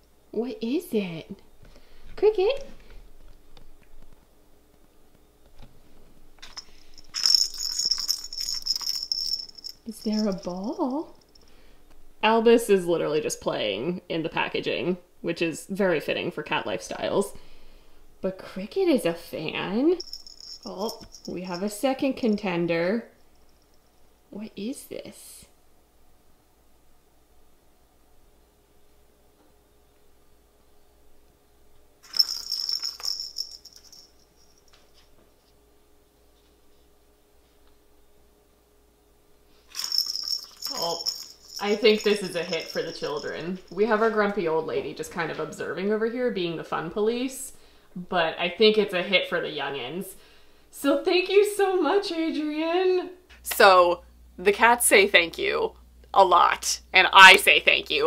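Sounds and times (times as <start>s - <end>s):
ball rattling around plastic track: 6.4s - 10.4s.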